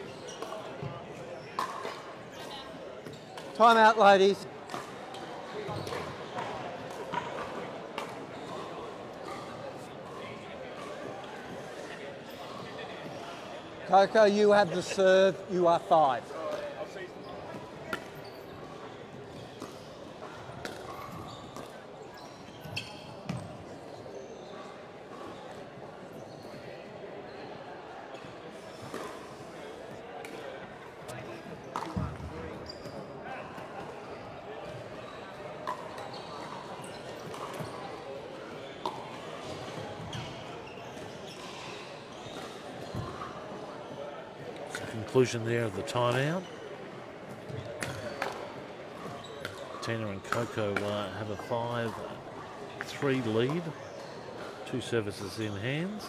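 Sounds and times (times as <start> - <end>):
murmur of distant voices: 0.0 - 56.0.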